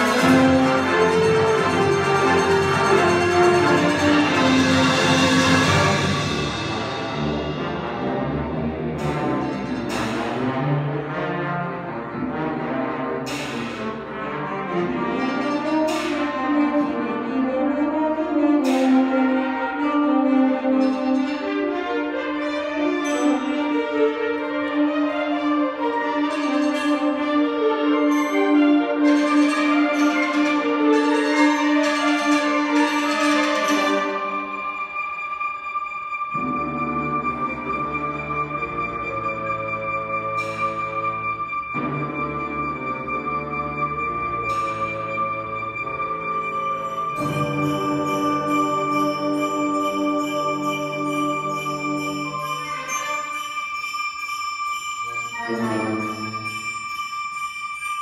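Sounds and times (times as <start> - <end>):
sharp accented percussion strikes: 0.0 - 11.4, 13.2 - 14.1, 15.1 - 17.0, 17.9 - 19.6, 26.3 - 58.0
wind band playing: 0.0 - 58.0.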